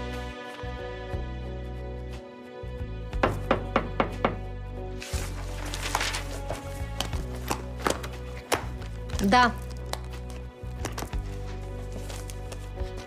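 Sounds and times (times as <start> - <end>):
soft background music: 0.0 - 13.0
knocks on a door: 3.2 - 4.4.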